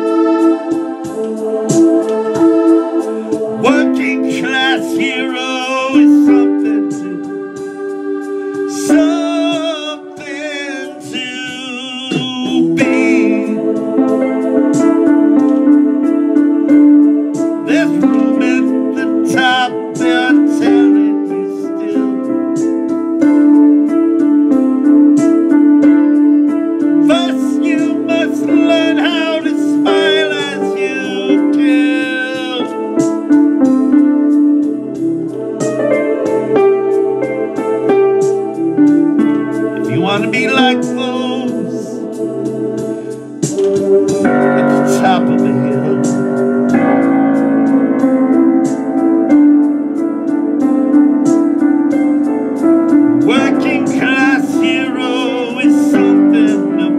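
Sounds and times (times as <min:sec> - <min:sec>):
instrumental backing of held chords: 0:00.0 - 0:56.9
man singing in a rough voice: 0:03.6 - 0:07.3, 0:08.7 - 0:13.8, 0:17.7 - 0:22.2, 0:27.0 - 0:33.0, 0:39.8 - 0:42.0, 0:43.7 - 0:46.2, 0:53.2 - 0:56.9.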